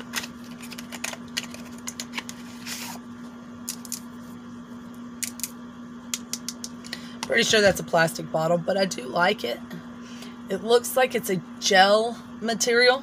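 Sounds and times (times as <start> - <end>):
packaging rustle: 0.0 - 3.0.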